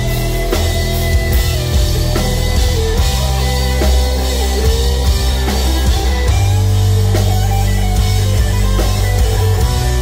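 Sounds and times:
drum kit hits: 0.0 - 10.0
electric guitars sustained low notes: 0.0 - 10.0.

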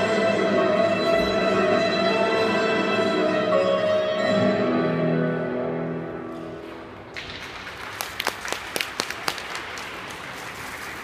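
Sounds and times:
hand claps: 7.1 - 11.0.

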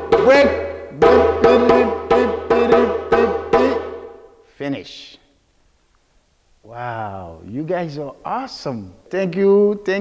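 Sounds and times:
djembe hand strikes: 0.0 - 4.2.

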